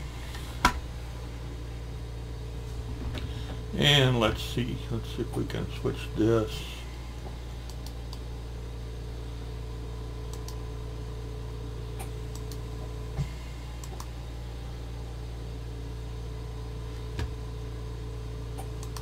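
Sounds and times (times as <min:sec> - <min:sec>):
low electrical hum: 0:00.0 - 0:19.0.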